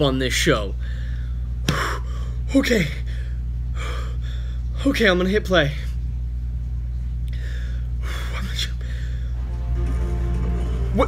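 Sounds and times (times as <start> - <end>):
man breathing heavily: 0.8 - 4.8, 7.3 - 9.4
low hum: 5.7 - 11.0.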